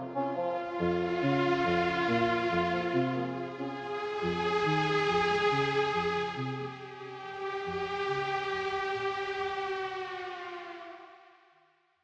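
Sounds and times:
low bass notes: 0:00.0 - 0:06.8.

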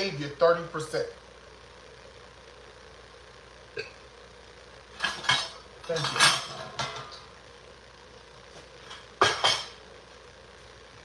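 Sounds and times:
dishes and utensils clattering: 0:04.9 - 0:07.3, 0:08.8 - 0:09.8.

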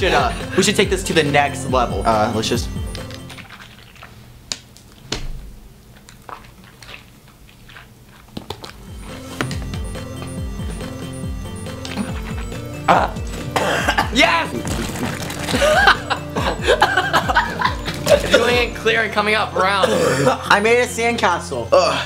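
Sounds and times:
background music: 0:00.0 - 0:03.5, 0:08.8 - 0:22.0
person coughing and spluttering: 0:11.9 - 0:18.5, 0:19.8 - 0:20.4.

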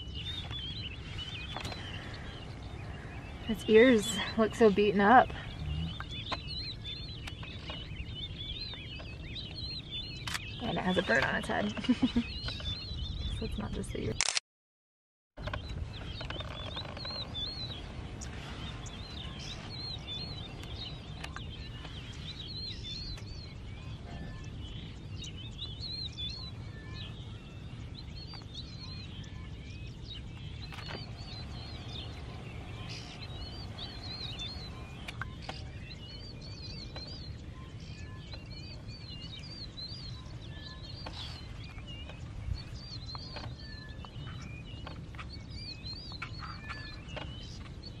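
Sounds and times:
low steady rumble: 0:00.0 - 0:14.1, 0:15.4 - 0:48.0
birds chirping: 0:00.0 - 0:14.4, 0:15.4 - 0:48.0.

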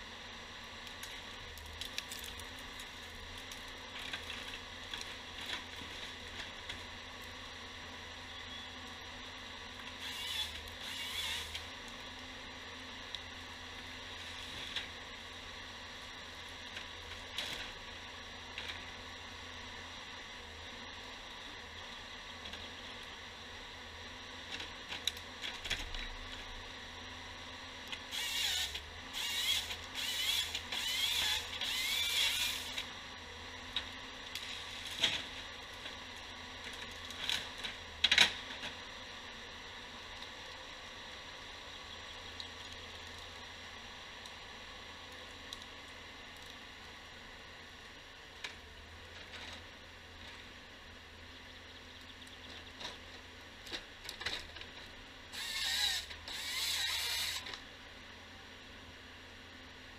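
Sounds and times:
faint engine hum: 0:00.0 - 0:59.9
harvester head creaking and squealing: 0:10.0 - 0:11.6, 0:28.1 - 0:32.8, 0:55.4 - 0:57.5.

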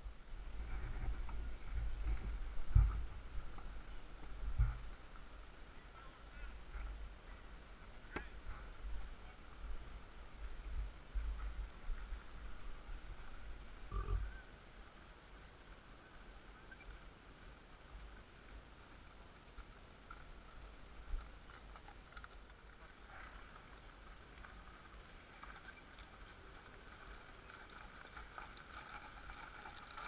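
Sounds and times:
low microphone rumble: 0:00.0 - 0:14.5.

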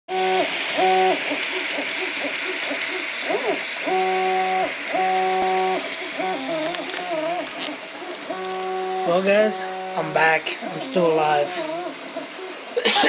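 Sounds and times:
cooling fans hissing: 0:00.1 - 0:13.0
stepper motors whining: 0:00.1 - 0:13.0.

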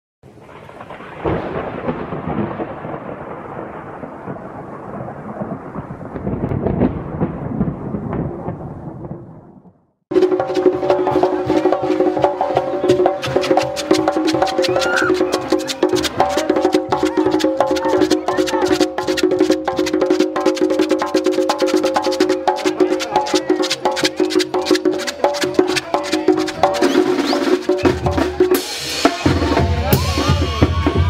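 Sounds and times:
thunder crack and rumbling: 0:00.2 - 0:20.4
brass band playing: 0:10.1 - 0:31.0.

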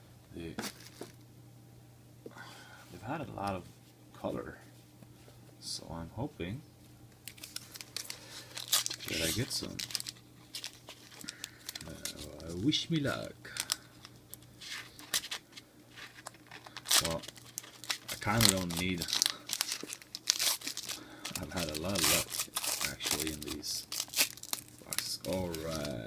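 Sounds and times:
foil wrapper crinkling: 0:07.2 - 0:26.0.

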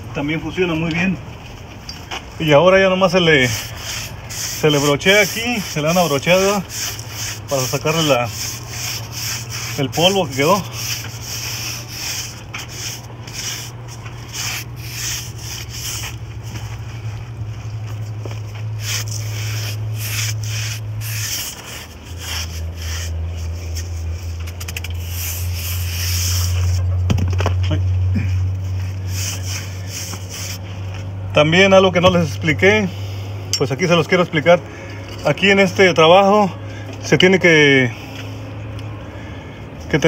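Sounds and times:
steady low hum: 0:00.0 - 0:40.0
brush scrubbing brick wall: 0:02.5 - 0:26.9, 0:28.2 - 0:31.0.

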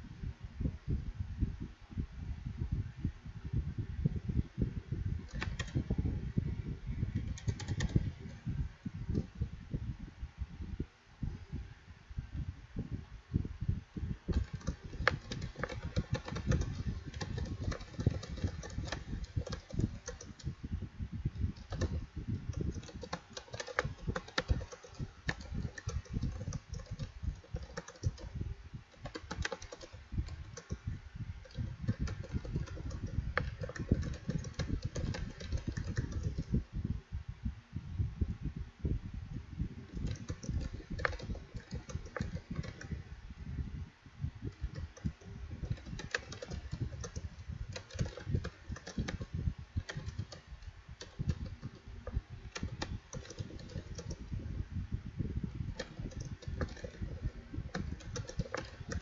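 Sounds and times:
computer keyboard typing: 0:05.2 - 0:06.0, 0:07.2 - 0:08.4, 0:14.3 - 0:20.5, 0:21.6 - 0:30.8, 0:31.4 - 0:36.5, 0:39.9 - 0:43.0, 0:44.5 - 0:54.3, 0:55.7 - 0:59.0.

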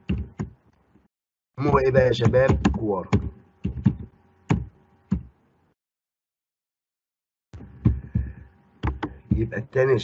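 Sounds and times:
dull taps on microphone: 0:07.6 - 0:09.5
faint hum: 0:07.6 - 0:10.0.

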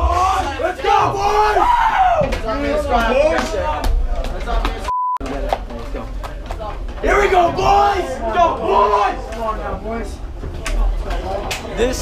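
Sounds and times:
short censor beep: 0:04.9 - 0:05.2.

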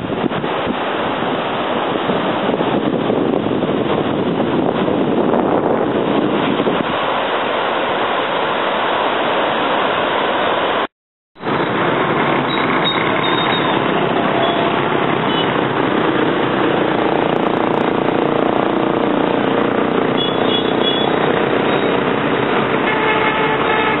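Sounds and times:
heavy motorbike traffic: 0:11.4 - 0:24.0.

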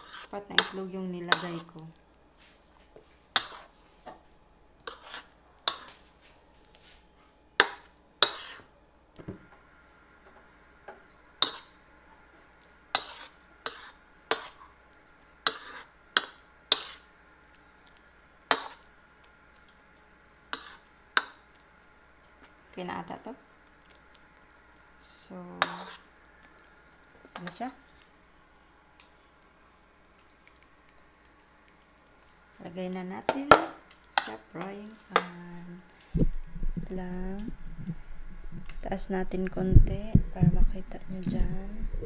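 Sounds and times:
metal spoon scraping plastic bowl: 0:04.9 - 0:05.9, 0:25.6 - 0:26.0.

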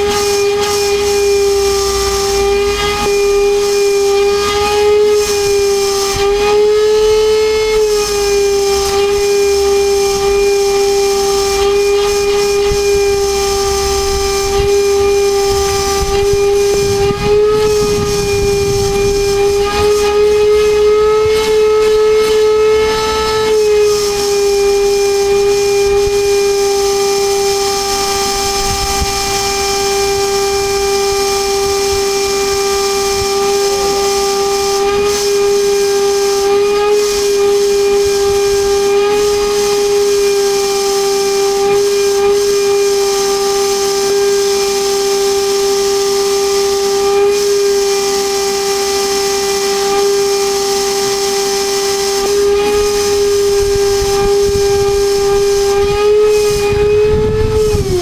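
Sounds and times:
vacuum cleaner whining: 0:00.0 - 0:58.0.

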